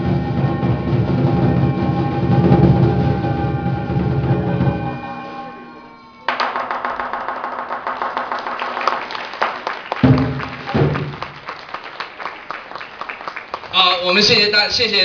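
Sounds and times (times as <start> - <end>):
gong ringing: 0.0 - 6.3.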